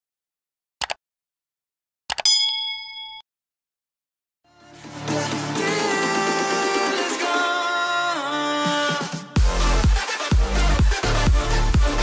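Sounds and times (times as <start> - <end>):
bright bell ding: 2.2 - 3.3.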